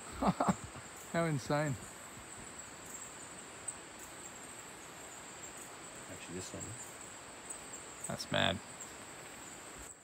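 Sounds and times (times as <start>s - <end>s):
faint hiss: 0.0s - 10.0s
night insects chorus: 0.0s - 10.0s.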